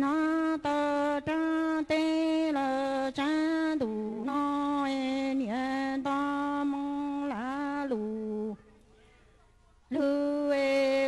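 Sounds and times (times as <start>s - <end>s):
woman singing into a microphone: 0.0s - 8.6s, 9.9s - 11.0s.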